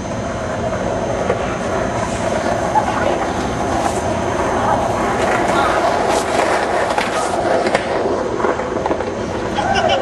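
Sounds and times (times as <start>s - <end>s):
skateboard wheels rolling on concrete: 0.0s - 10.0s
skateboard clacks: 0.2s - 10.0s.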